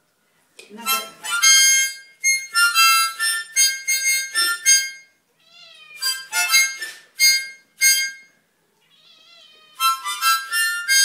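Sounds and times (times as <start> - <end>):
harmonica chord blasts: 0.8 - 5.1, 6.0 - 8.4, 9.8 - 11.0
cat meowing: 5.4 - 6.3, 8.8 - 10.2.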